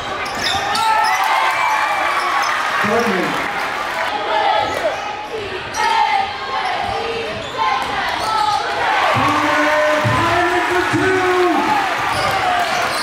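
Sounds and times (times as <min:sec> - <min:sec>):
sneakers squeaking: 0:00.0 - 0:01.2, 0:04.7 - 0:06.0, 0:06.6 - 0:08.7, 0:12.1 - 0:13.0
crowd chatter: 0:02.0 - 0:13.0.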